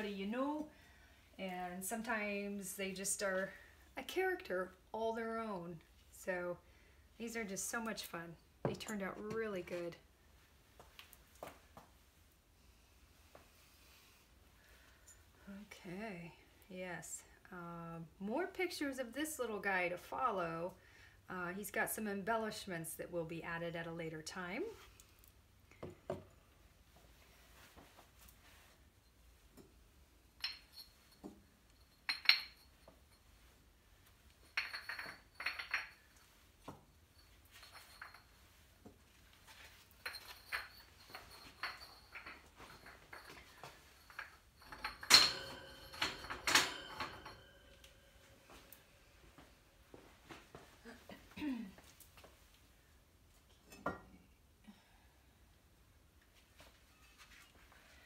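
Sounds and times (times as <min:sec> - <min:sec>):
ceramic pieces clinking: 0:31.8 - 0:32.9, 0:34.4 - 0:36.2, 0:40.0 - 0:48.1.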